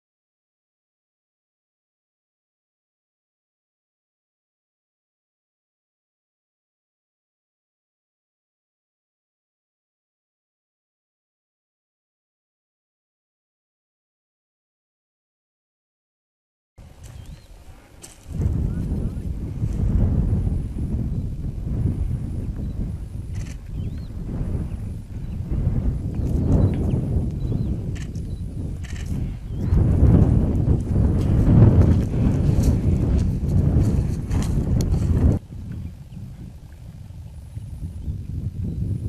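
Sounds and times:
footsteps on dry soil: 16.8 - 20.7, 25.8 - 35.8
outdoor hush: 16.8 - 30.9
low rumble: 16.8 - 38.8
wind buffeting microphone: 16.8 - 39.0.

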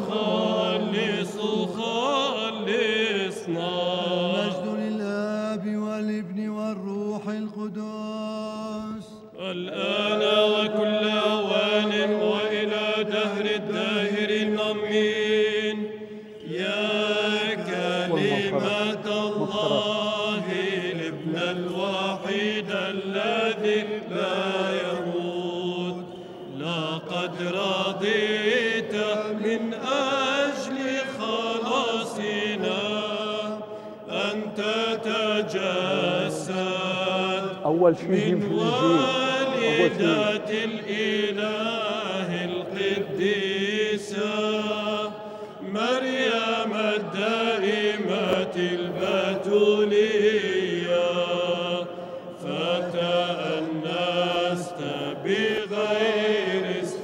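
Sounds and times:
choir chanting: 0.0 - 5.4, 9.3 - 57.0
man chanting: 17.3 - 22.5, 34.2 - 40.6.

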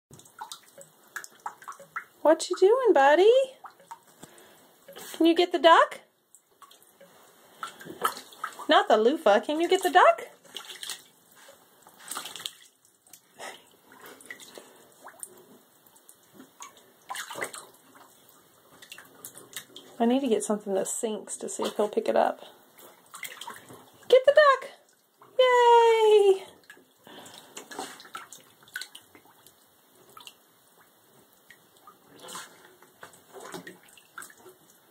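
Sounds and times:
water splashing and dripping: 0.1 - 34.9
otter splashing in water: 0.2 - 2.2, 7.6 - 8.7, 9.6 - 11.2, 11.9 - 13.2, 16.0 - 20.0, 22.8 - 24.1.

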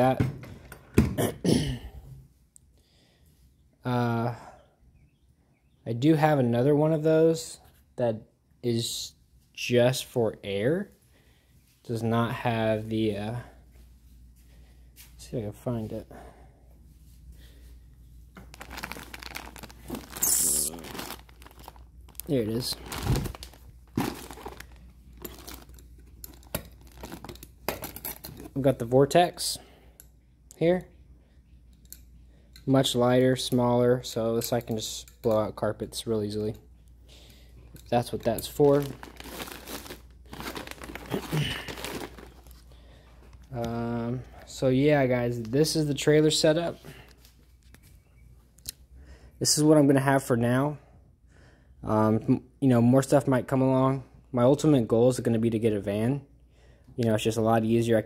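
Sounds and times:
plastic packaging crinkling: 18.4 - 27.6, 38.0 - 42.8.

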